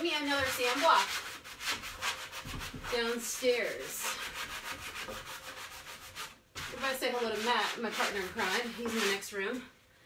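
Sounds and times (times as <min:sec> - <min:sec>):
sanding block rubbing wood: 0:00.0 - 0:09.2.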